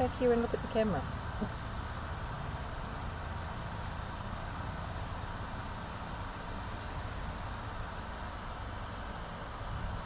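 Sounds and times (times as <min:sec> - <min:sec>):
electric fan running: 0:00.0 - 0:10.0.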